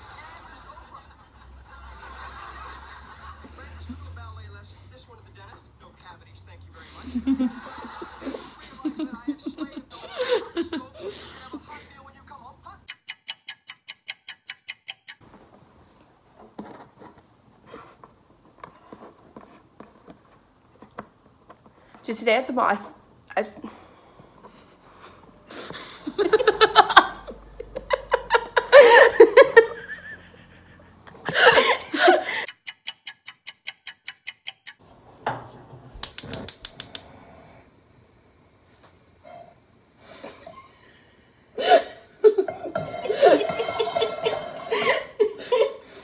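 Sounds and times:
rapid clock ticking: 12.8s - 15.2s, 32.4s - 34.8s
gas stove igniter clicking: 36.0s - 37.1s.

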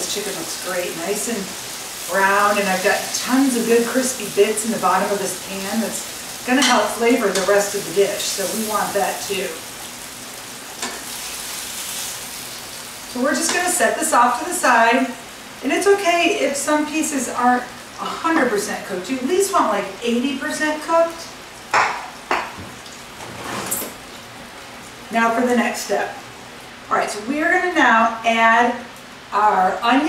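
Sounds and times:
chicken sizzling in a frying pan: 0.0s - 30.0s.

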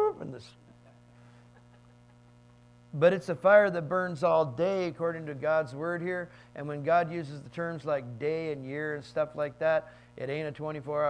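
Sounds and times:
person speaking: 0.0s - 0.7s
electrical mains hum: 0.0s - 11.0s.

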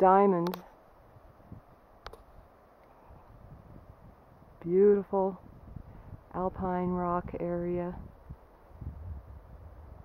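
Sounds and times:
wind rumble on microphone: 1.0s - 10.0s.

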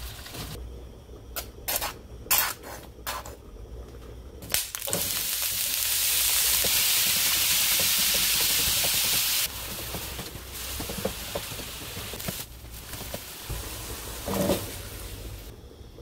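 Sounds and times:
meat sizzling in hot oil: 4.5s - 15.5s
spatula scraping and tapping pan: 6.6s - 14.8s.

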